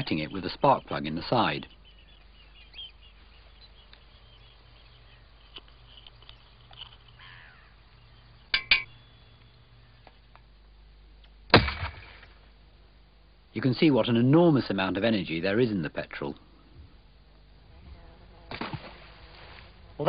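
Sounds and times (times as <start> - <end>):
light metallic clinks: 8.5 - 9.5.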